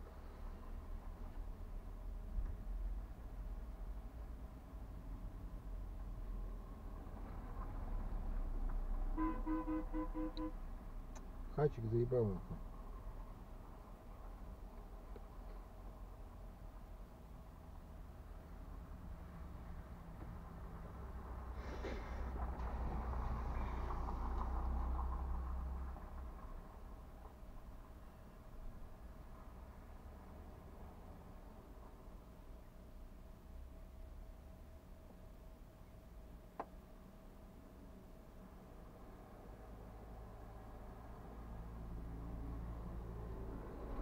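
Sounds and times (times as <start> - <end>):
vehicle engine rumbling: 0.0 - 34.7, 35.8 - 44.0
short horn-like beeps: 9.2 - 10.6.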